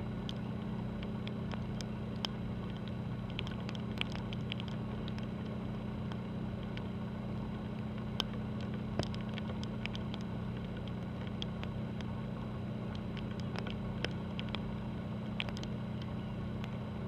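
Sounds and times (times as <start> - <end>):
ship engines droning: 0.0 - 17.0
faint sharp ticks: 0.2 - 6.9, 7.5 - 12.2.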